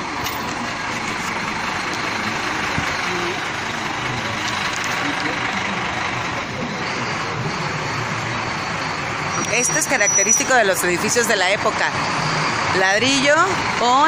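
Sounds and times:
bus diesel engine running: 0:00.0 - 0:14.0
street sounds: 0:00.0 - 0:14.0.

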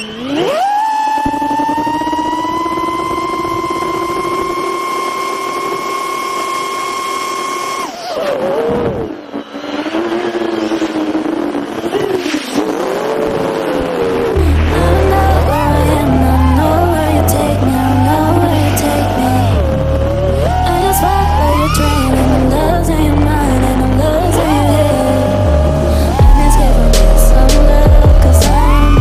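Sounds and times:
drone motors whining: 0:00.0 - 0:29.0
music with heavy beat: 0:24.7 - 0:29.0.

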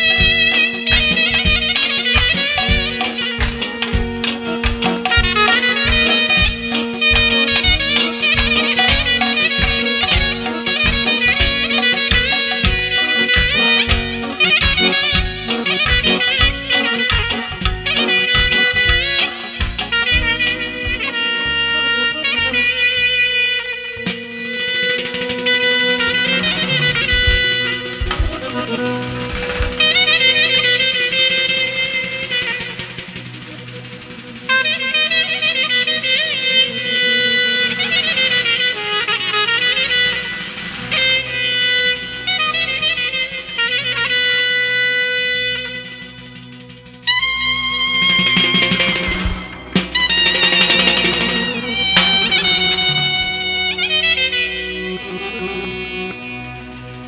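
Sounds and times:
clarinet playing: 0:00.0 - 0:57.0
drum beats: 0:00.0 - 0:57.0
low accompaniment: 0:00.0 - 0:57.0.

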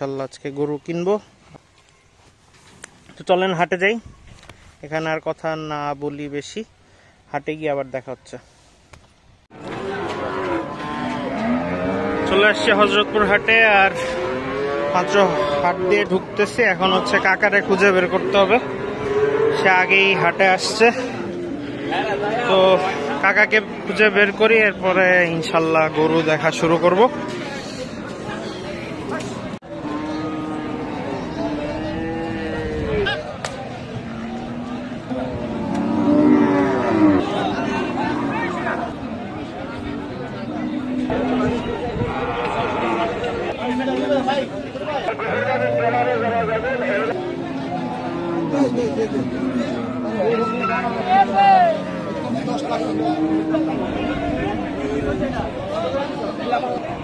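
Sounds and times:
crowd voices: 0:09.5 - 0:57.0
market noise: 0:09.5 - 0:57.0
cow mooing: 0:09.6 - 0:23.8, 0:29.7 - 0:33.2, 0:34.0 - 0:38.9, 0:40.5 - 0:43.6, 0:45.0 - 0:55.1.

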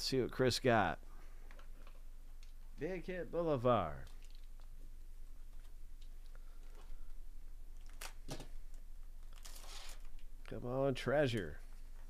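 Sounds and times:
steady low hum: 0:00.0 - 0:12.0
wrapper crinkling: 0:04.0 - 0:04.8, 0:05.4 - 0:10.3.

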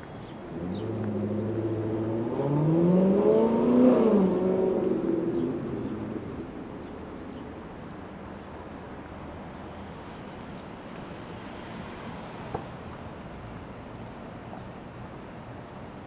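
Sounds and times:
vehicle passing and accelerating: 0:00.4 - 0:08.4.

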